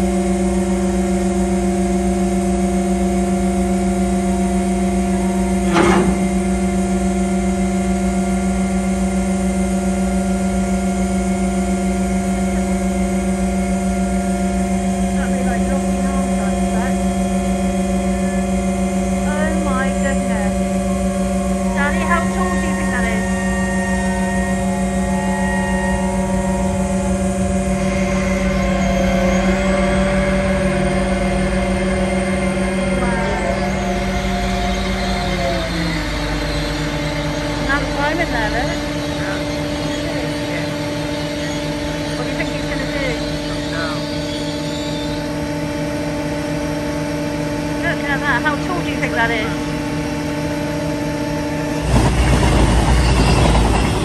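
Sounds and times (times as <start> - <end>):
large engine humming: 0.0 - 54.0.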